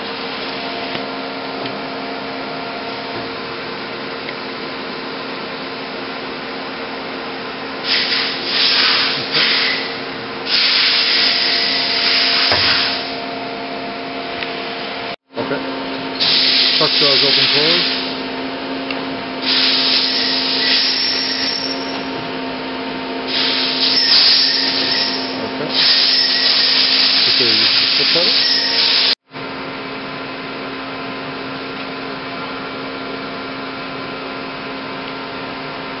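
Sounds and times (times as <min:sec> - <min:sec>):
loud rushing hiss: 0:07.8 - 0:13.2, 0:16.2 - 0:18.2, 0:19.4 - 0:21.0, 0:23.3 - 0:25.0, 0:25.7 - 0:29.2.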